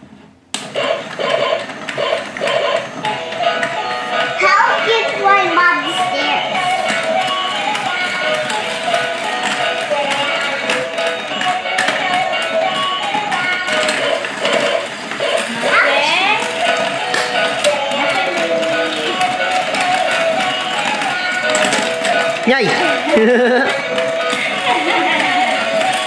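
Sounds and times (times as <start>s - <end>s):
electronic toy tune: 0.8s - 26.0s
toy figures knocking: 6.0s - 26.0s
rapid plastic clicking: 6.6s - 26.0s.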